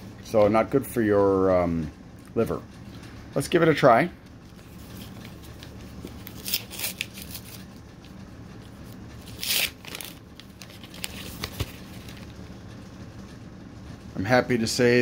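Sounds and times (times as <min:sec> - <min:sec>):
steady low hum: 0:00.0 - 0:15.0
wrapper tearing and crinkling: 0:06.1 - 0:07.6, 0:09.2 - 0:12.2.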